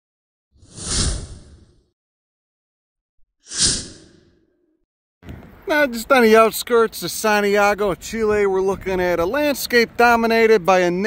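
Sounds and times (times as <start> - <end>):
whoosh sound effects: 0.6 - 1.9.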